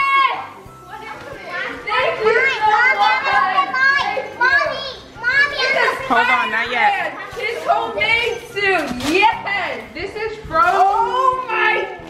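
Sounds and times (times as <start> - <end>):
children shouting and squealing: 0.0 - 8.6.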